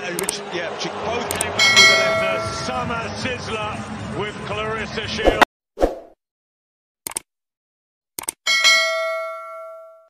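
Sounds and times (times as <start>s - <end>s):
quick clicks: 7.1s - 7.3s, 8.2s - 8.4s
bell-like ding: 8.5s - 10.0s.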